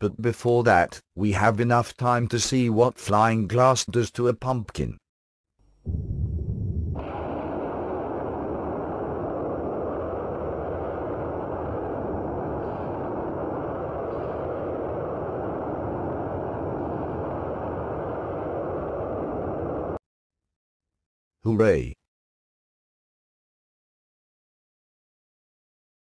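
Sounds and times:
deep explosion boom: 5.8 - 20.0
dense rushing noise: 5.9 - 20.0.

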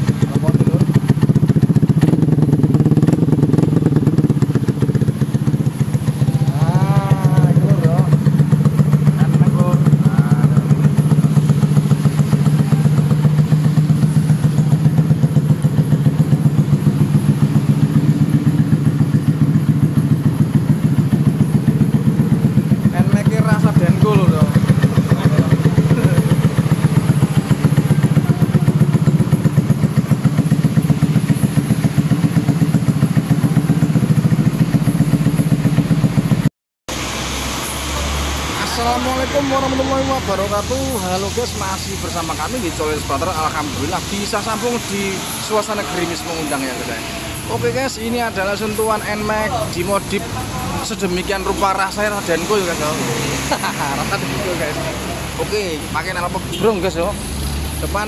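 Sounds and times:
scooter engine idling: 0.0 - 58.0.

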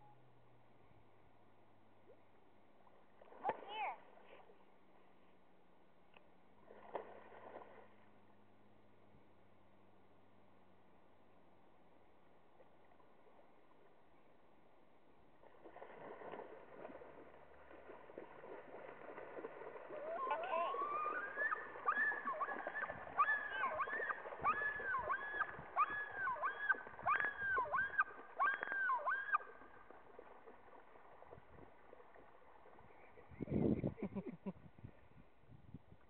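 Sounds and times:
bird splashing on water: 6.5 - 8.2, 15.2 - 33.3
loon yodel call: 20.0 - 29.5.

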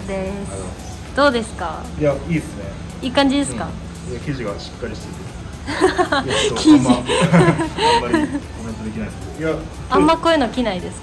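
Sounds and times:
person chuckling: 5.7 - 8.6.

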